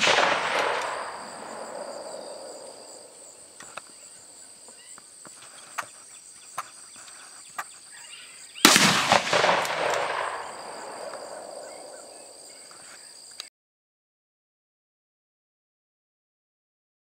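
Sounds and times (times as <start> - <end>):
rifle shot echoing: 0.0 - 3.6, 8.6 - 12.3
high buzz of insects: 0.0 - 13.5.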